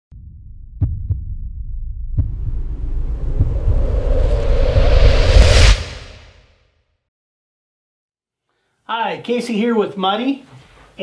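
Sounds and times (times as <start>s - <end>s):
deep thumps: 0.1s - 6.2s
low rumbling drone: 0.1s - 6.4s
rising hissing swell: 2.7s - 6.4s.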